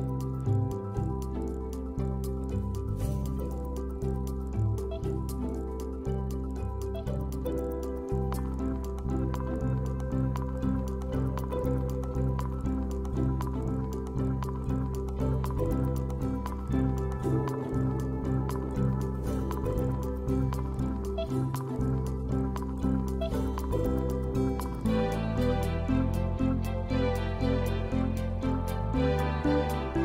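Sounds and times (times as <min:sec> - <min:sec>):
background music with pulsing beat: 0:00.0 - 0:30.0.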